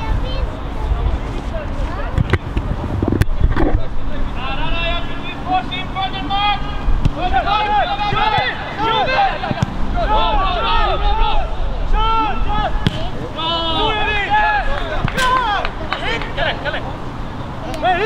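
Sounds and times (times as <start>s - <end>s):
wind rumble on microphone: 0.0s - 4.3s
voices calling and shouting: 0.0s - 18.0s.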